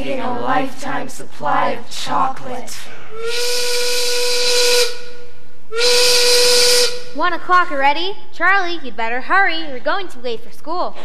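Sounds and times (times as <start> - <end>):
steam factory whistle: 3.1 - 7.2
steam hissing: 3.2 - 5.2, 5.8 - 7.1.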